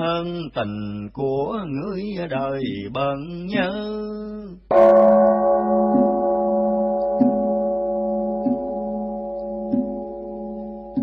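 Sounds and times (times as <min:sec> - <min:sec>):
bowl bell ringing: 0:04.7 - 0:11.0
soft regular knocks: 0:08.4 - 0:08.9.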